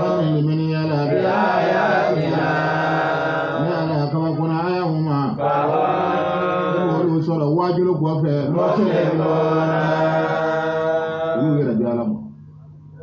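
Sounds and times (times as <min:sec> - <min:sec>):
man chanting into a microphone: 0:00.0 - 0:01.4, 0:03.6 - 0:05.5, 0:06.8 - 0:09.0.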